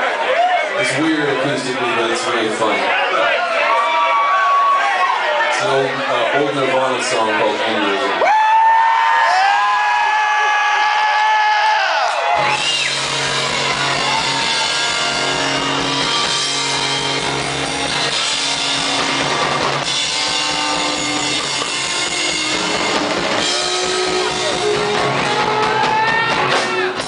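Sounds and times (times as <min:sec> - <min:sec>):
live rock band playing: 0:12.1 - 0:27.0
held high tone: 0:19.8 - 0:25.2.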